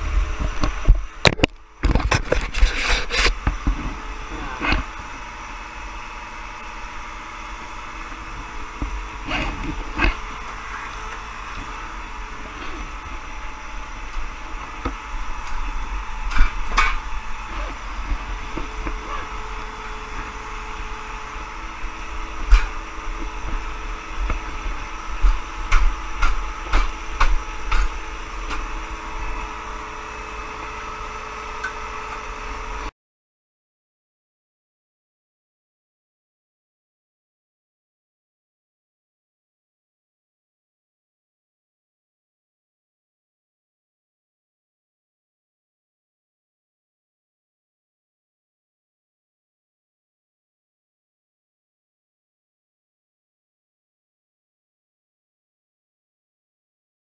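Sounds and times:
steady mechanical hum: 0:00.0 - 0:32.9.

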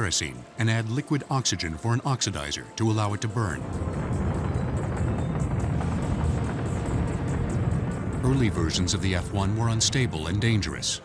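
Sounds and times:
rocket engine roaring: 0:03.4 - 0:11.0.

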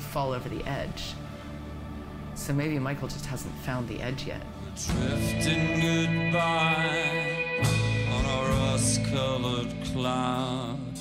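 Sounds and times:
guitar: 0:00.4 - 0:11.0
low drone: 0:01.1 - 0:11.0
man singing chant-like line: 0:04.6 - 0:11.0.

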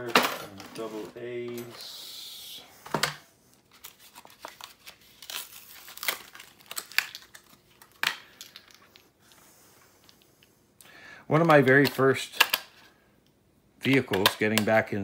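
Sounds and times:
blister pack tearing and crinkling: 0:03.7 - 0:09.0
packaging clicks and snaps: 0:03.8 - 0:09.0, 0:11.4 - 0:12.8, 0:13.8 - 0:14.8.

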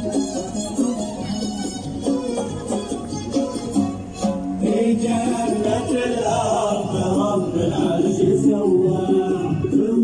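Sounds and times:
men singing a chant: 0:04.6 - 0:10.0.

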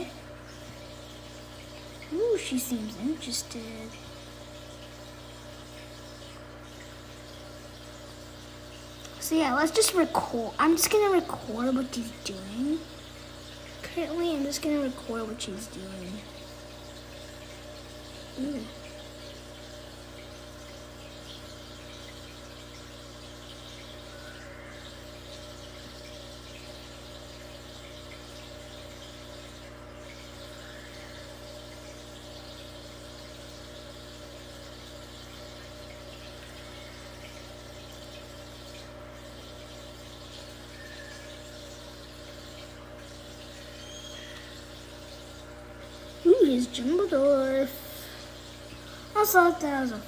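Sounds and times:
filter pump humming: 0:00.0 - 0:50.0
moving water: 0:00.0 - 0:50.0.

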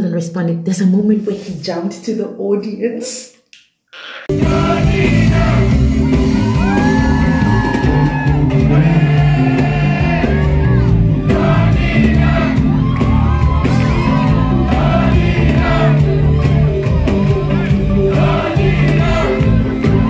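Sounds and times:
audience cheering and shouting: 0:04.3 - 0:20.0
person singing with band: 0:04.3 - 0:20.0.

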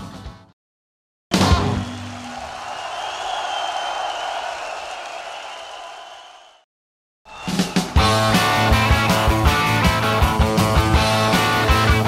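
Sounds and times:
crowd cheering and applauding: 0:01.4 - 0:06.7, 0:07.3 - 0:09.8.

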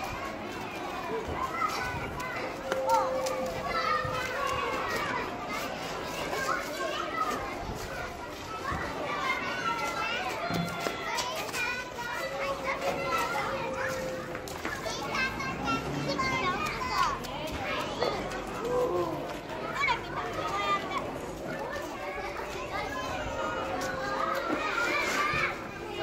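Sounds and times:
children shouting at play: 0:00.0 - 0:26.0.

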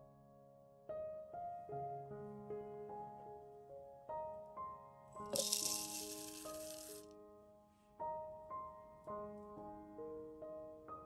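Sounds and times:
oats pouring into plastic cup: 0:05.3 - 0:07.0.

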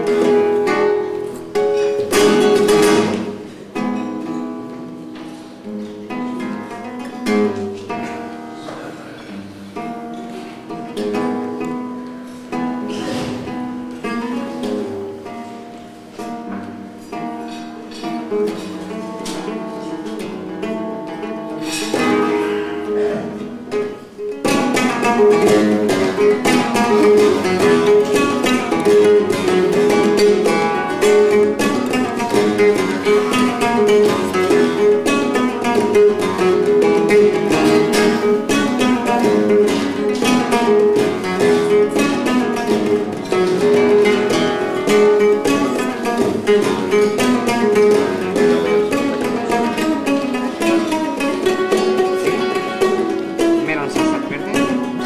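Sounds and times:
flamenco guitar playing: 0:00.0 - 0:55.0.

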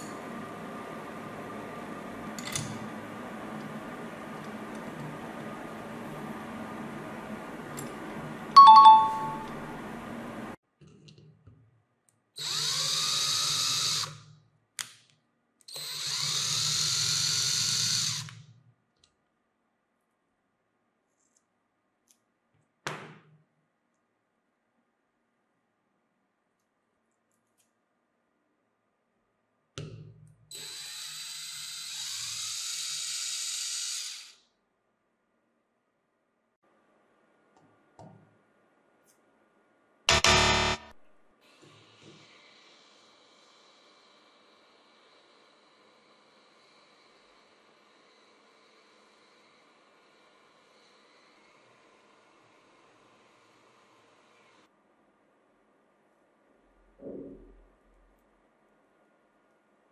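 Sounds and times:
power drill driving a screw: 0:12.4 - 0:14.2, 0:15.7 - 0:18.4, 0:30.5 - 0:34.4.

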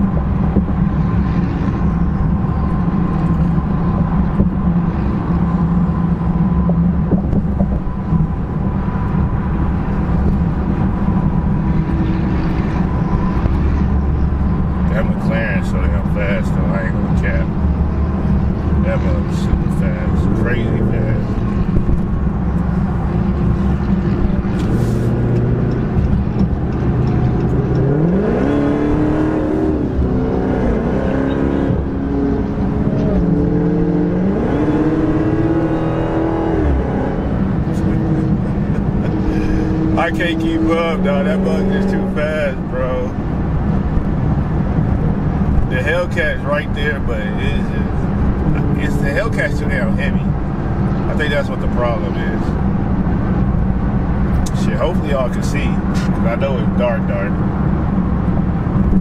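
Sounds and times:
car engine revving: 0:00.0 - 0:59.0
loud road noise: 0:00.0 - 0:59.0.

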